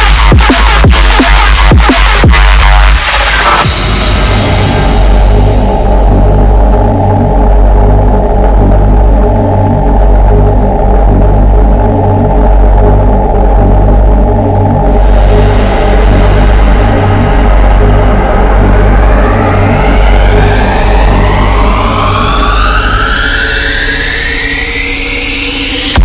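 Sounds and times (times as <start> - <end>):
drum and bass music: 0.0 - 26.0
heavy sub-bass: 0.0 - 26.0
rising synth sweep: 0.0 - 26.0.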